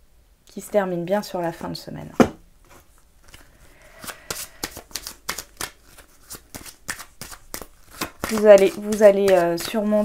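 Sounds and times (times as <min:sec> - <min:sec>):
cards being shuffled: 0:02.6 - 0:10.0.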